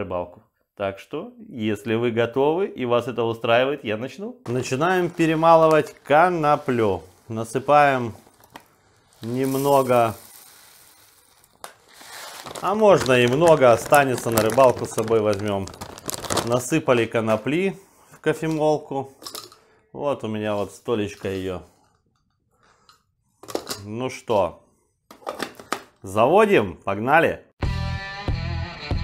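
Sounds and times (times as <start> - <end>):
man speaking: 0.0 - 8.2, 9.2 - 10.3, 12.6 - 19.2, 19.9 - 21.7, 23.8 - 24.6, 26.0 - 27.5
seeds pouring into a bowl: 4.5 - 17.1
faint handling noise: 20.5 - 23.9.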